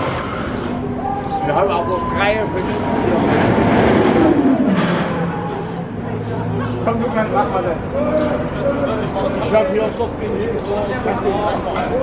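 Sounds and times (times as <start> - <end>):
ride gondola whir falling in pitch: 0.0 - 7.2.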